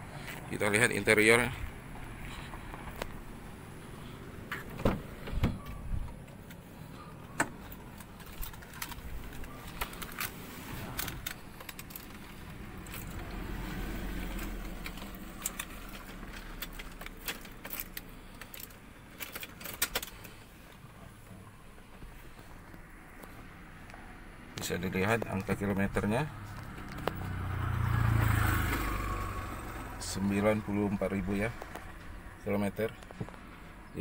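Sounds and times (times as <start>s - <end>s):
car door opening: 4.5s - 6.5s.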